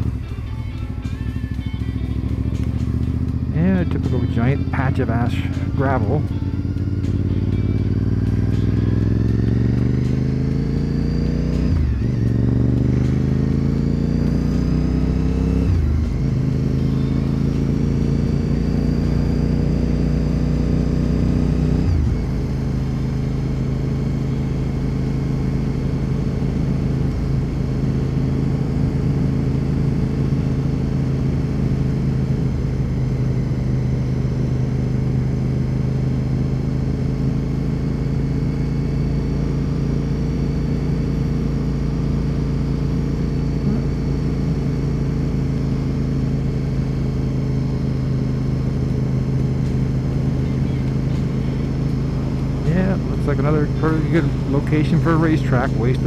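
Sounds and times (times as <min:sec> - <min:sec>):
motorcycle engine accelerating through gears: 0:00.0 - 0:56.0.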